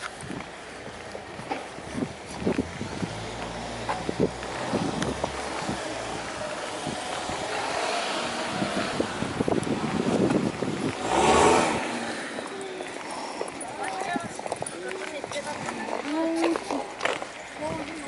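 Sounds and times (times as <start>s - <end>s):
car passing: 1.9s - 14.0s.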